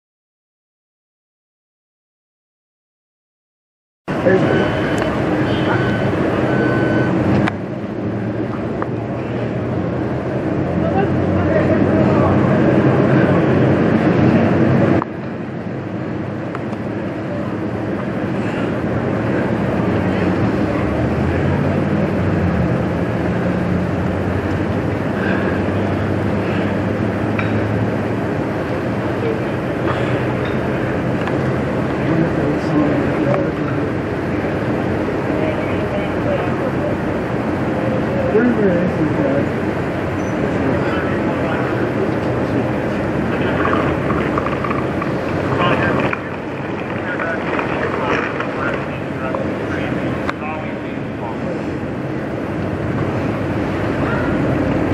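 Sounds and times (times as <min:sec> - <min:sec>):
indistinct voices: 0:04.1 - 0:15.2, 0:16.7 - 0:54.9
fire truck engines running: 0:04.1 - 0:54.9.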